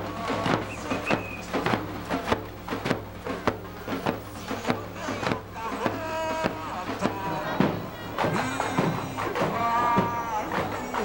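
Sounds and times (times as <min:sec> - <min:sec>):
bass drums beating: 0:00.0 - 0:11.0
percussion: 0:00.0 - 0:11.0
voices singing: 0:00.0 - 0:11.0.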